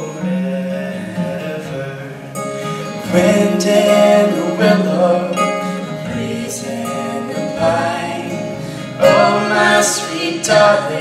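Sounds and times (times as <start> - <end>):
strummed acoustic guitar: 0.0 - 11.0.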